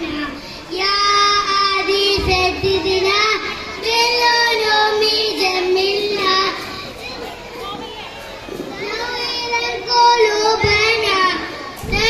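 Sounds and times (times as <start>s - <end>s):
children singing in unison: 0.7s - 6.8s, 8.7s - 12.0s.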